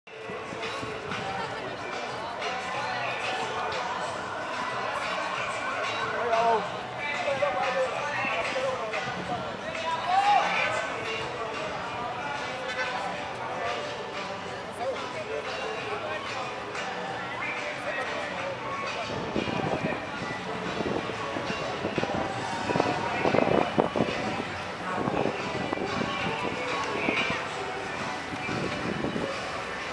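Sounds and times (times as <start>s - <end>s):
music: 0.1s - 29.9s
people talking indistinctly: 0.1s - 29.9s.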